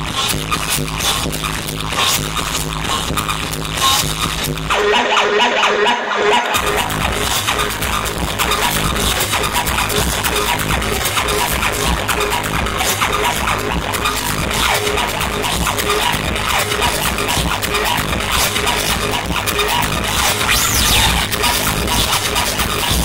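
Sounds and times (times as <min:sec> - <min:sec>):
electronic dance music: 0:00.2 - 0:23.0.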